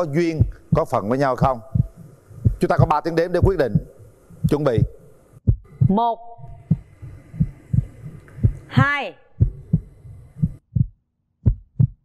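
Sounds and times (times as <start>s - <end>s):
low heartbeat thumps: 0.0s - 12.0s.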